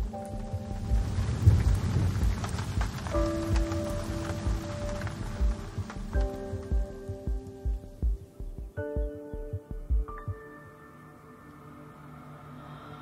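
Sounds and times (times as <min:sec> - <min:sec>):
low thunder rumble: 0:00.0 - 0:09.1
rain falling: 0:00.0 - 0:10.1
soft music with low beat: 0:00.0 - 0:13.0.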